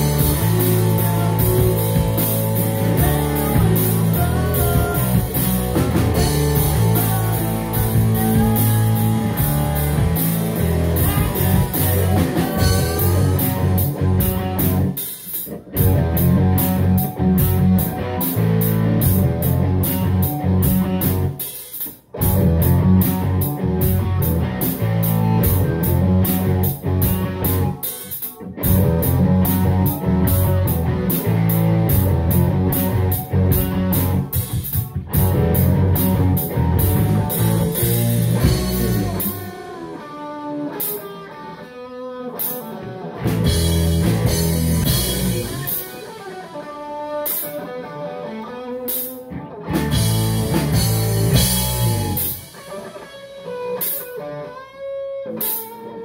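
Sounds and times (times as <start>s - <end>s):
rock band playing: 0.0s - 56.0s.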